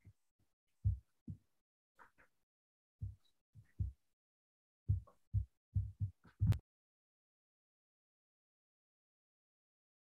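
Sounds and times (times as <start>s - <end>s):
low muffled thumps: 4.9s - 6.6s.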